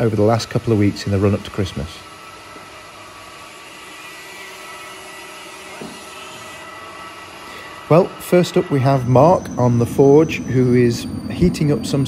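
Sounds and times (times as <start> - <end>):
workshop machinery humming: 0.0 - 12.0
faint whining tones: 4.3 - 12.0.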